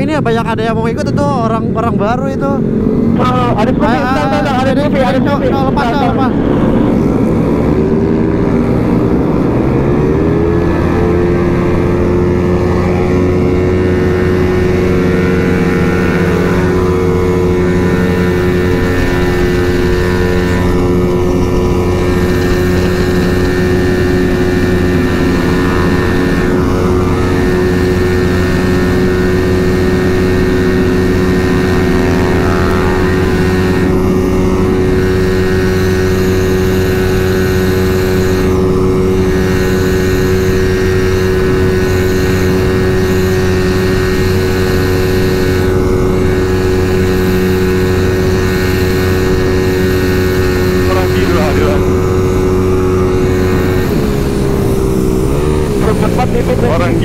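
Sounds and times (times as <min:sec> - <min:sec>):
scooter engine running hard: 0:00.0 - 0:57.0.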